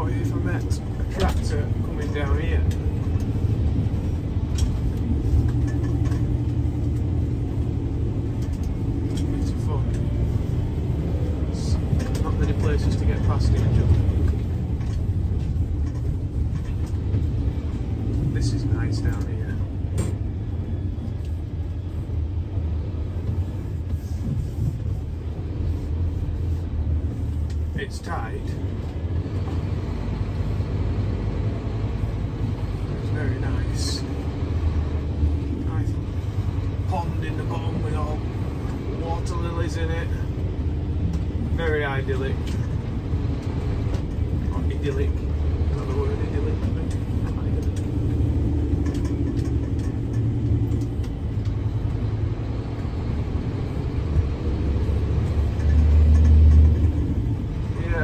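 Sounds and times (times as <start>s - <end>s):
vehicle engine and road rumble: 0.0s - 58.0s.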